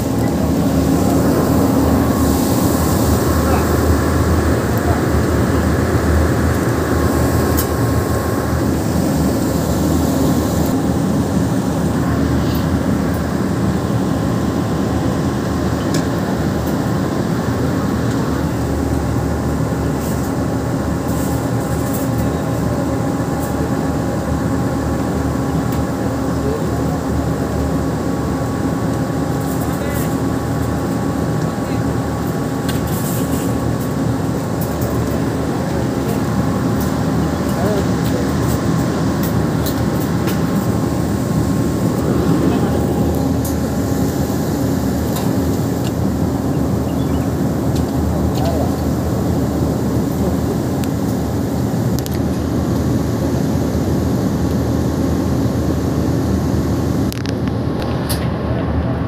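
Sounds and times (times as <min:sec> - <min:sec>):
loud background hum: 0:00.0 - 0:59.0.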